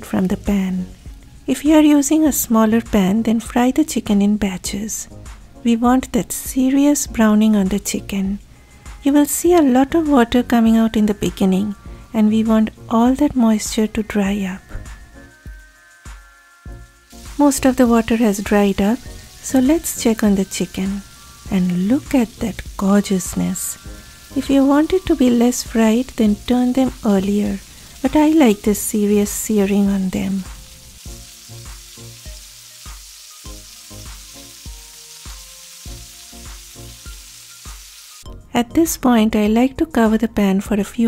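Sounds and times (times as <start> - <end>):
soft background music: 0.0 - 41.0
chicken sizzling in hot oil: 0.4 - 3.2, 16.1 - 38.3.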